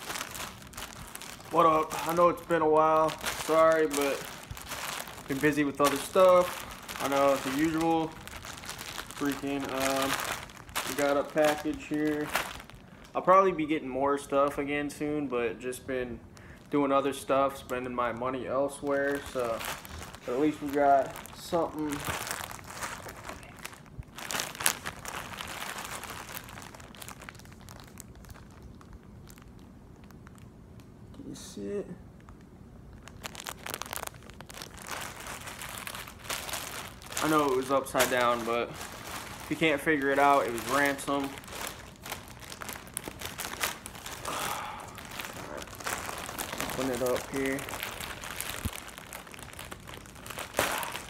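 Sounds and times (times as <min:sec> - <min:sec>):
plastic bag crinkling: 0:00.0 - 0:30.5, 0:32.2 - 0:51.0.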